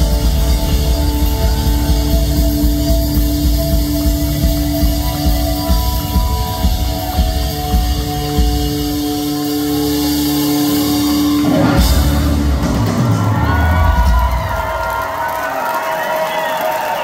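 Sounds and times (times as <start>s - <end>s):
live rock band playing: 0.0s - 15.4s.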